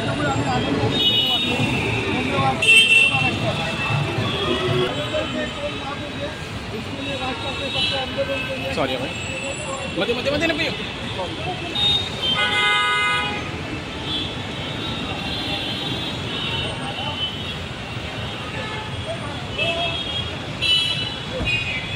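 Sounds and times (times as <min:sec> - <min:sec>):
people talking: 0:00.0 - 0:12.1
road traffic noise: 0:00.0 - 0:21.9.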